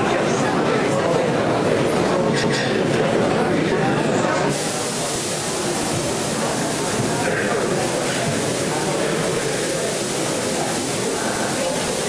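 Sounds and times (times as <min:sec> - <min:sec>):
crowd chatter in large hall: 0:00.0 - 0:12.0
steady hiss: 0:04.5 - 0:12.0.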